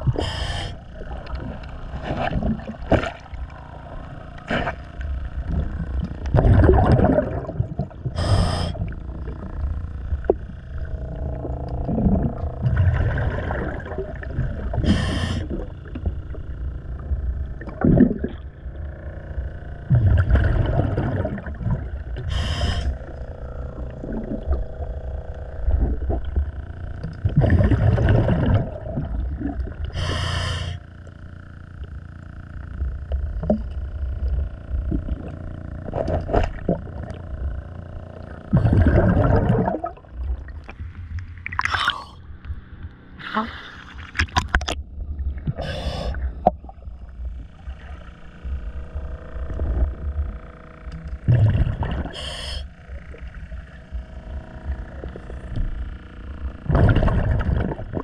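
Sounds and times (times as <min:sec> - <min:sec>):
regulator inhale hiss: 0:00.0 - 0:00.9, 0:08.2 - 0:08.9, 0:14.8 - 0:15.6, 0:22.2 - 0:23.2, 0:29.9 - 0:30.9, 0:45.6 - 0:46.3, 0:52.1 - 0:52.8
exhaled bubbles rumbling underwater: 0:00.0 - 0:58.0.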